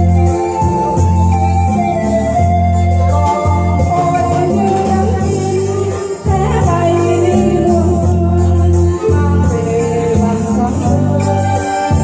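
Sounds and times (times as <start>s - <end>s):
electronic keyboard chords: 0.0s - 12.0s
woman singing a ballad: 3.2s - 12.0s.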